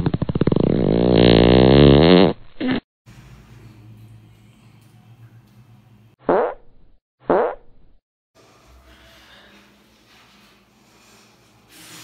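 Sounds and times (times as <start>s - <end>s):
fart sound effects: 0.0s - 2.8s, 6.2s - 8.0s.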